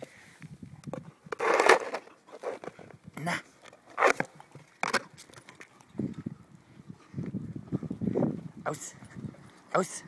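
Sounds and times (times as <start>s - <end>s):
frisbee scraping on paving stones: 1.0s - 5.8s
dog tugging plastic frisbee: 3.8s - 5.7s.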